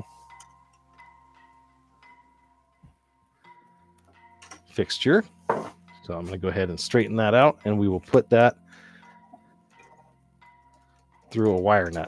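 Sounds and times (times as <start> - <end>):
bell-like background music: 0.0 - 12.0.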